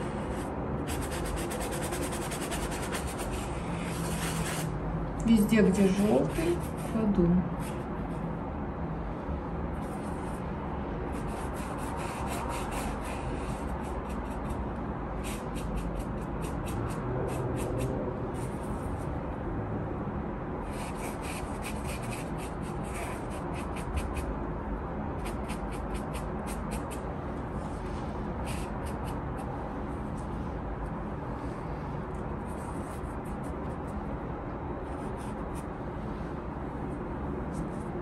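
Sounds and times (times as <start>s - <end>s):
low background hum: 0.0s - 38.0s.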